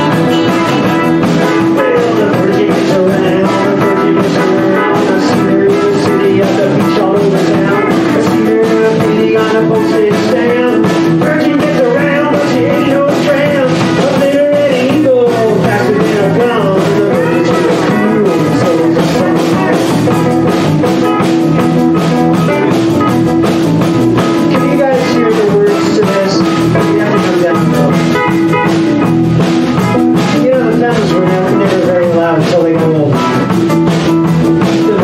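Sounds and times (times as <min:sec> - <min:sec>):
electric blues band jamming: 0:00.0 - 0:35.0
pedal steel guitar lead lines: 0:00.0 - 0:35.0.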